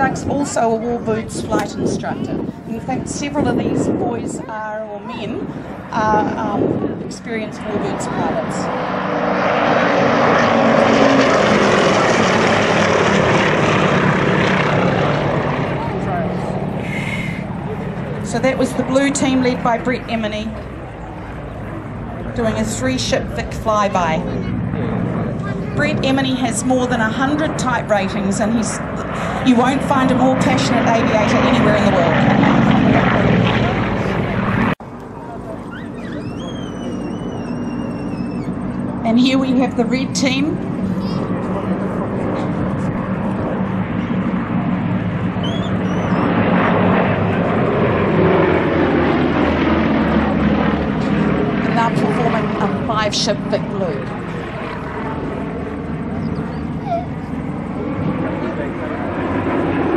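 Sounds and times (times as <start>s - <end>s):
propeller aircraft flyby: 0.0s - 59.9s
thin high whistle: 35.7s - 38.6s, 45.4s - 46.3s.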